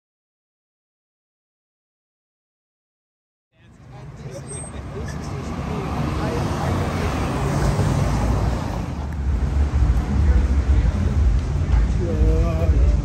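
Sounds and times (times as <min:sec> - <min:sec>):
faint voices: 0:03.6 - 0:13.0
traffic rumble: 0:03.6 - 0:13.0.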